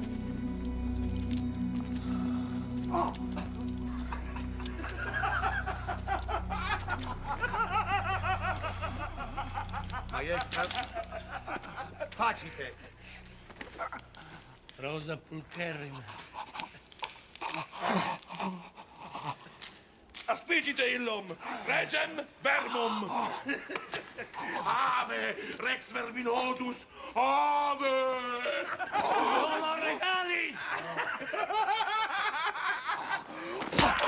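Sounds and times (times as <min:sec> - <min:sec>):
men laughing mockingly: 0:02.9 - 0:14.4, 0:23.1 - 0:25.4, 0:28.4 - 0:34.0
man crying out: 0:27.2 - 0:30.6.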